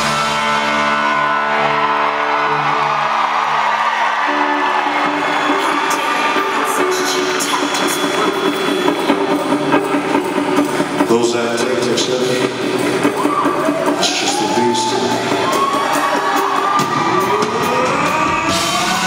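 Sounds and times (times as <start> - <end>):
crowd cheering and whooping: 0.0 - 11.0, 12.3 - 19.0
rock band holding a chord: 13.8 - 19.0.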